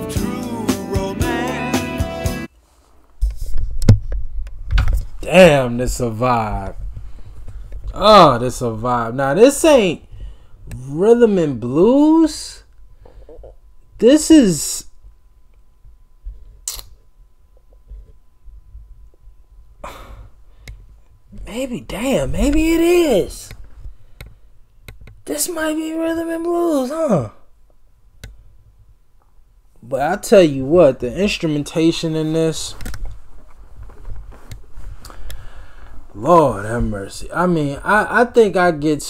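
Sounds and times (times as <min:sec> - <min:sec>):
low room rumble: 0:03.0 - 0:39.0
short breath: 0:35.0 - 0:36.0.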